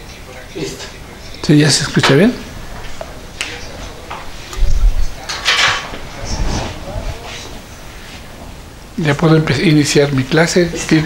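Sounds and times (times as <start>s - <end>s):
clothing rustle: 2.6s - 8.7s.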